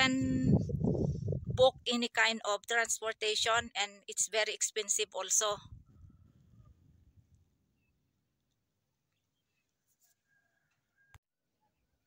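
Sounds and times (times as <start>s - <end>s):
faint low rumble: 0.0s - 1.9s.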